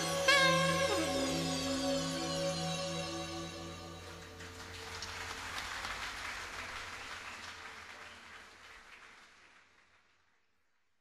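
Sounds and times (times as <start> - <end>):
audience applause: 4.0 - 10.4.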